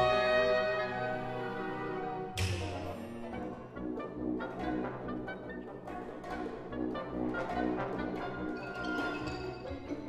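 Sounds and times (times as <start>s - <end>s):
orchestra playing repeated chords: 0.0s - 10.0s.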